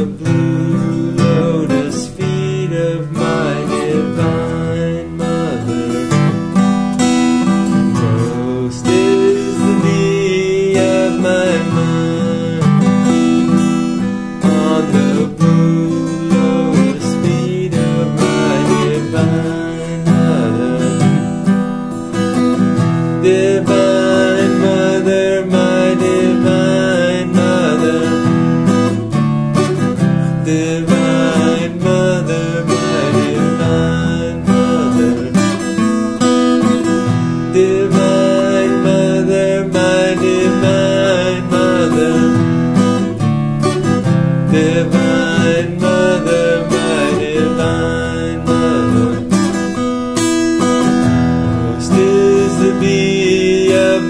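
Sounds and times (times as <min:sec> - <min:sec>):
man singing a chant: 0:00.0 - 0:06.6, 0:07.6 - 0:21.6, 0:23.2 - 0:29.0, 0:30.2 - 0:43.2, 0:44.4 - 0:49.8, 0:51.3 - 0:54.0
acoustic guitar strumming: 0:00.0 - 0:54.0.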